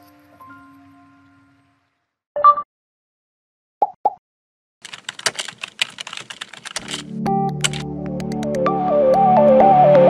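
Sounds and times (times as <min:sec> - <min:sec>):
keyboard typing clicks: 0:04.8 - 0:08.4.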